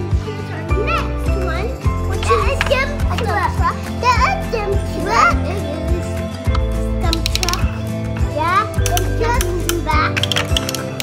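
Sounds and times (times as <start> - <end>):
children's voices: 0.0 - 10.2.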